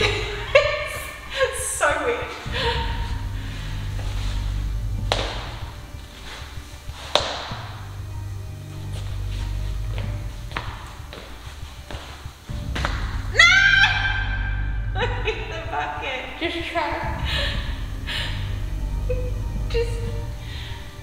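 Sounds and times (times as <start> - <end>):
background music with bass line: 0.0 - 21.0.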